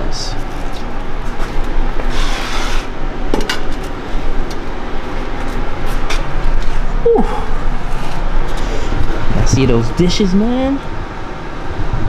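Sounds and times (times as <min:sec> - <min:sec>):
workshop background noise: 0:00.0 - 0:06.9.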